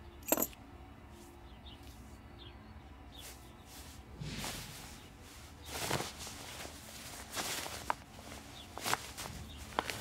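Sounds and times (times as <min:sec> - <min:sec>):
jacket cloth rustling: 0:03.2 - 0:10.0.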